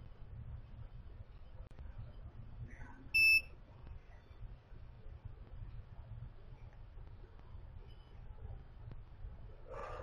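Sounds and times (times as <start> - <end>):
short electronic beep: 3.2 - 3.5.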